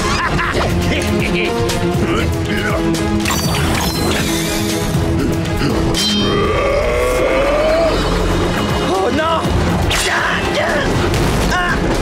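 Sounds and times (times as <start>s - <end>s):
long rising cry: 6.2s - 8.3s.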